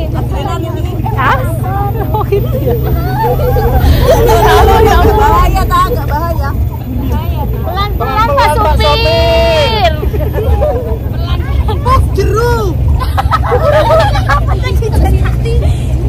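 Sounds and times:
vehicle low rumble: 0:00.0 - 0:16.0
women chattering: 0:00.0 - 0:16.0.

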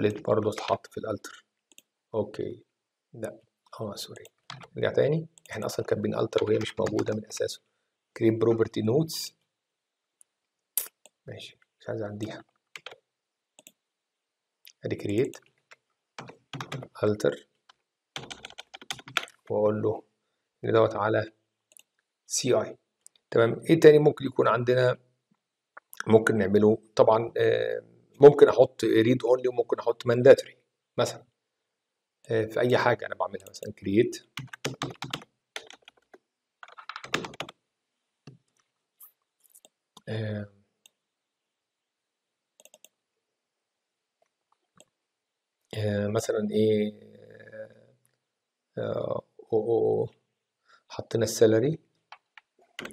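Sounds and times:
faint computer mouse clicks: 0:42.6 - 0:43.0.

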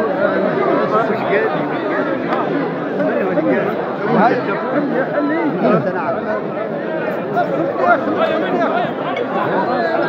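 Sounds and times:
men chattering: 0:00.0 - 0:10.0.

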